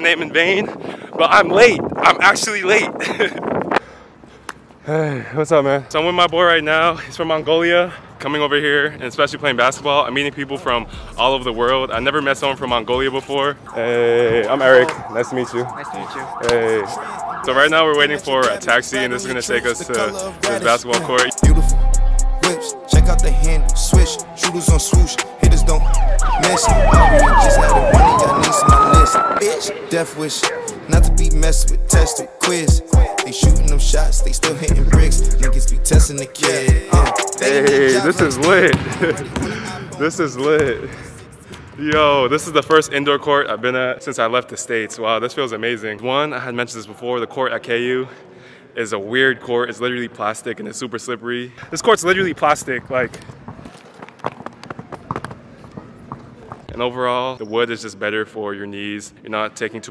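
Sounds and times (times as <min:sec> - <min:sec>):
ambulance siren: 0:13.6 - 0:34.3.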